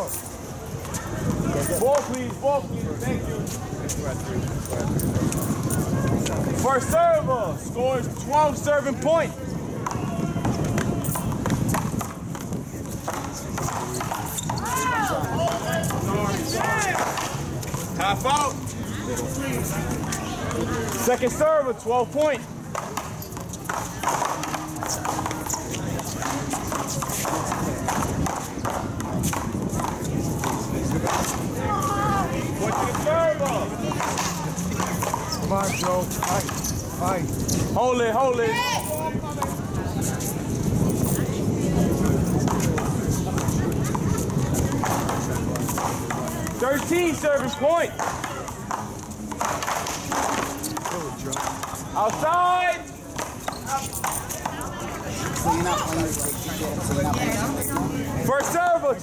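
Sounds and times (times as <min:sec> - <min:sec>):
paddles hitting rubber ball: 0:09.8 - 0:18.6, 0:22.6 - 0:31.6, 0:32.3 - 0:37.9, 0:42.0 - 0:54.7.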